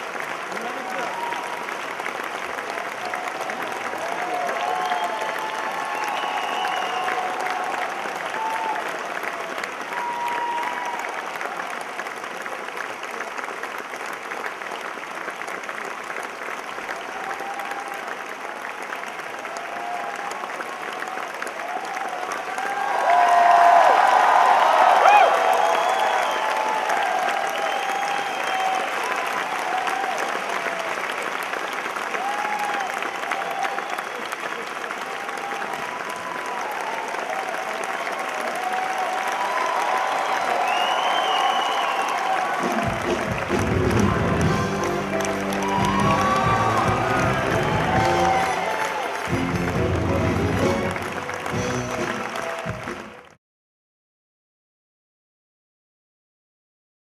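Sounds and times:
audience applauding: 0.0s - 53.4s
crowd shouts and whoops: 0.6s - 1.6s, 2.7s - 11.6s, 17.1s - 18.1s, 19.5s - 31.0s, 32.1s - 34.0s, 35.1s - 53.1s.

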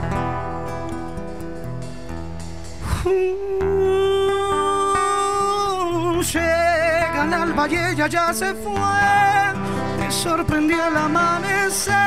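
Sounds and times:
drum beats: 0.0s - 8.2s
strummed acoustic guitar: 0.0s - 12.0s.

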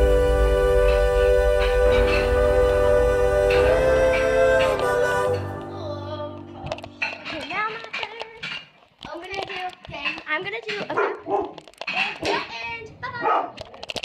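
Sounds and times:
background pop song: 0.0s - 8.6s
young girls calling and talking: 5.5s - 13.8s.

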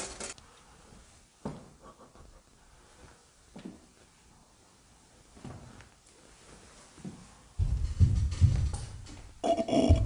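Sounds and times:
dull thumps from floor overhead: 7.6s - 10.0s.

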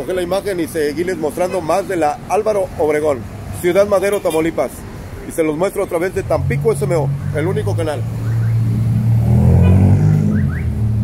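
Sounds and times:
car passing by: 6.3s - 11.0s.

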